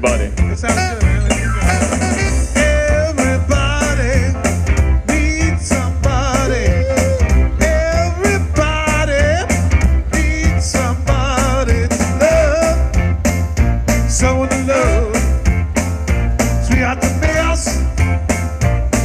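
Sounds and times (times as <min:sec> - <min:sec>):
bass-heavy backing beat: 0:00.0 - 0:19.0
saxophone melody with vibrato: 0:00.6 - 0:03.0.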